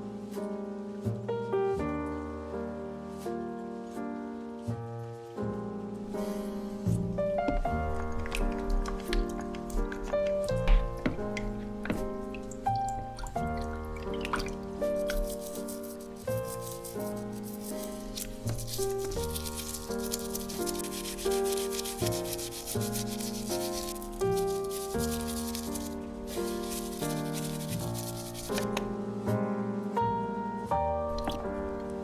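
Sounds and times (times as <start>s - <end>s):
background music: 0.0s - 32.0s
toothbrush scrubbing plastic: 7.5s - 28.9s.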